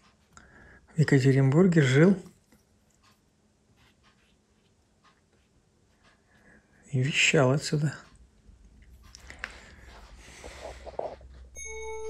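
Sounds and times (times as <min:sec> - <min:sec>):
brush scratching on canvas: 0:03.0 - 0:06.2.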